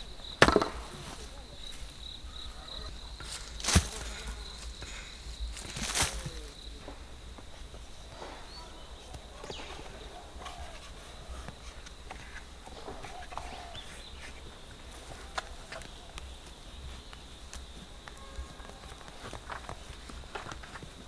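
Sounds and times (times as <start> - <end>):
high insect trill: 0.0 - 21.0
hoe striking into soil: 0.4 - 0.9.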